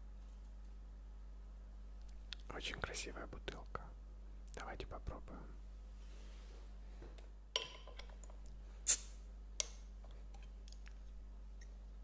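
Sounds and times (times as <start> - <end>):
bottle cap hiss: 8.8 - 9.2.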